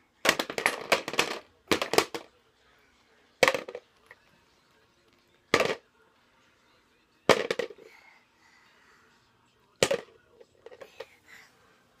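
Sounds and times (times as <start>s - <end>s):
toy blocks clattering into bucket: 0.3s - 2.3s.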